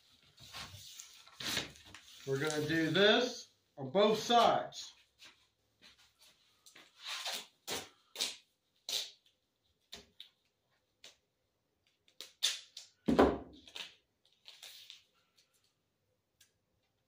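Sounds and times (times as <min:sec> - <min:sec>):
duct tape tearing: 0:12.2 - 0:12.9.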